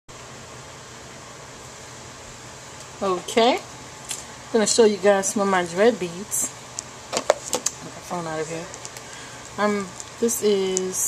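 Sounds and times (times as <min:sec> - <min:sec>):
background hiss: 0:00.2 - 0:11.0.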